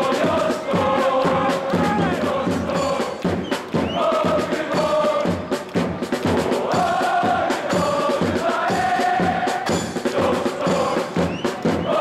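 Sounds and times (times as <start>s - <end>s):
drum beating: 0.0s - 12.0s
supporters chanting in unison: 0.0s - 12.0s.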